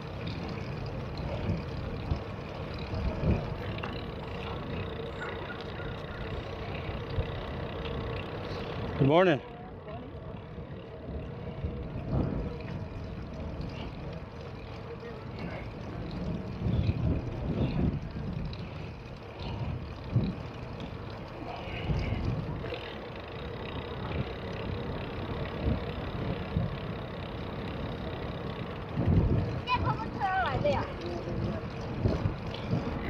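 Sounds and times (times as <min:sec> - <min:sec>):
rolling road noise: 0:00.0 - 0:33.0
wind rumbling on microphone: 0:00.0 - 0:33.0.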